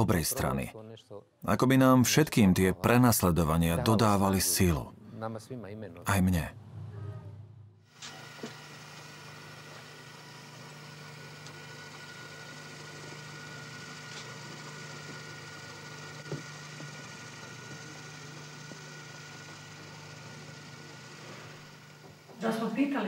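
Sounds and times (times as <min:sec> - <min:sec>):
low hum: 0:06.4 - 0:07.8
faint high tone: 0:06.8 - 0:07.5.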